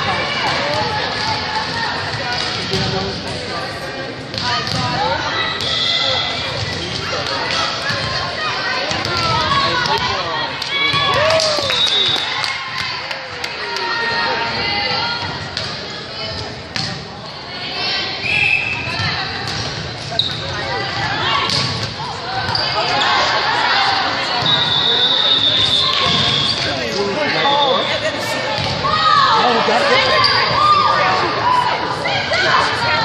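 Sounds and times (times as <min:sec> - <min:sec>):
echoing voices in a hall: 0:00.0 - 0:33.0
sneaker squeaks on gym floor: 0:18.4 - 0:20.6, 0:22.4 - 0:23.1.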